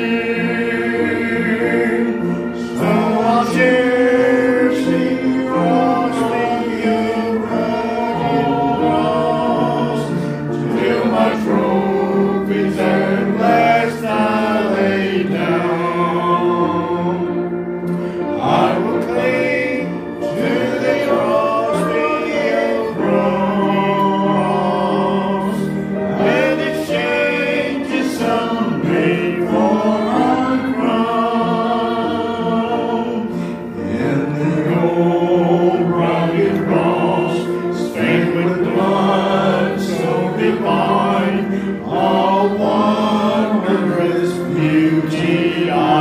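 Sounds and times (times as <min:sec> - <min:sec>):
congregation singing a hymn: 0:00.0 - 0:46.0.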